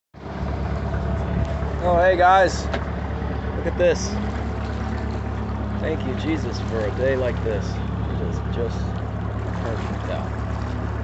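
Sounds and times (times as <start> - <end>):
boat engine rumbling: 0.2 - 11.0.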